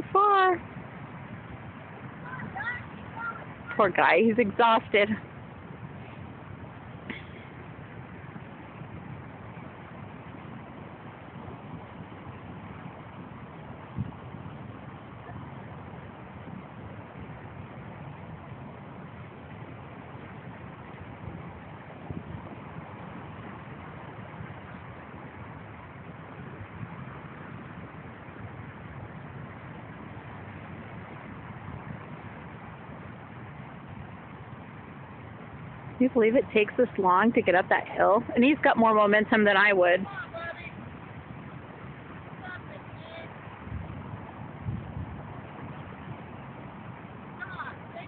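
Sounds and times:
wind noise on microphone: 0:00.0 - 0:48.0.

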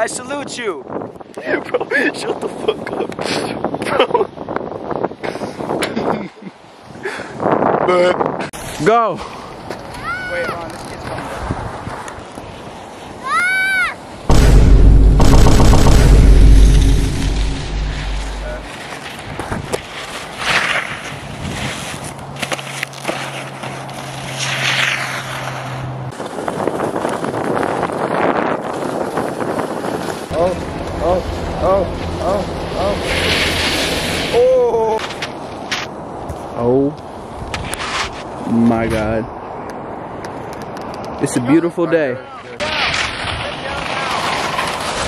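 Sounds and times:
skis hissing over snow: 0:18.4 - 0:31.2, 0:32.6 - 0:35.3, 0:42.6 - 0:45.0
wind buffeting microphone: 0:26.1 - 0:35.0.

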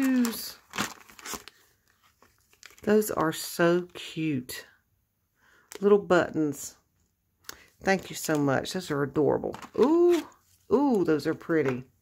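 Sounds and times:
plastic packet crinkling: 0:00.0 - 0:03.5, 0:09.4 - 0:11.0.

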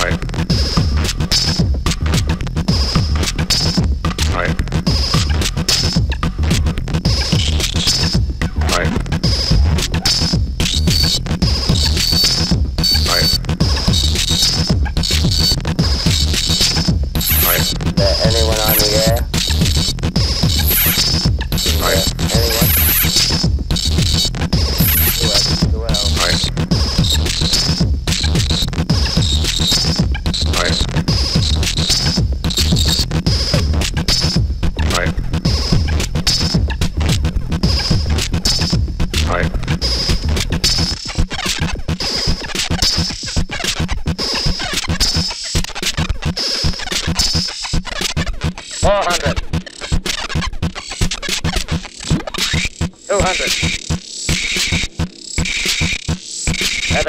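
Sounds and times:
pulsing low synth bass: 0:00.0 - 0:41.0
gritty synth noise: 0:00.0 - 0:57.0
low electronic thumps: 0:00.1 - 0:40.8
high band of tones: 0:09.4 - 0:34.4
bursts of hissing noise: 0:16.7 - 0:19.3, 0:20.5 - 0:23.4, 0:24.6 - 0:26.4.

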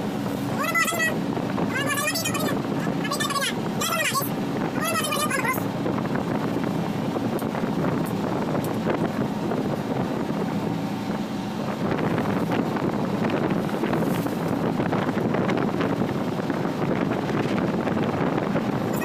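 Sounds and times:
boat engine humming: 0:00.0 - 0:19.0
sea wash: 0:00.0 - 0:19.0
wind buffeting microphone: 0:00.0 - 0:19.0.

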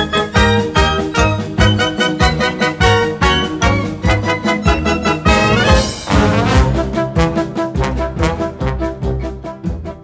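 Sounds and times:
brass orchestra playing: 0:00.0 - 0:10.0
percussive accents: 0:00.3 - 0:09.2.

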